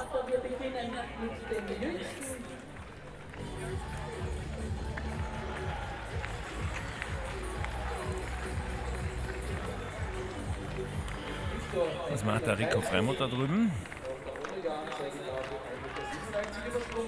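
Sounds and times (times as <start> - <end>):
crowd murmur: 0.0 - 17.0
music over public-address system: 0.0 - 17.0.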